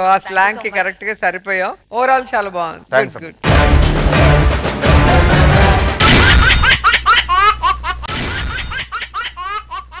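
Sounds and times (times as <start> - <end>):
loud hit: 5.6 - 6.6.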